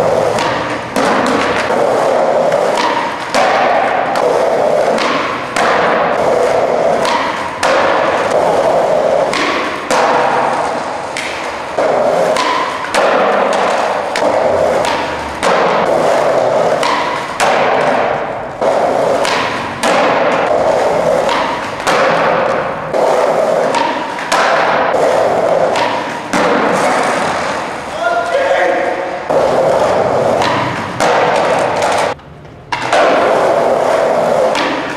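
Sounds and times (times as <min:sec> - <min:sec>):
skateboard wheels rolling on concrete: 0:00.0 - 0:34.9
skateboard tail popping and landing: 0:00.1 - 0:27.8, 0:29.3 - 0:34.9.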